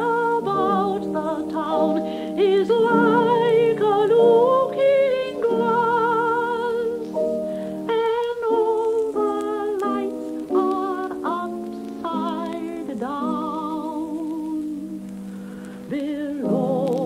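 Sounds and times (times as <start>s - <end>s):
person singing with vibrato: 0.0s - 17.0s.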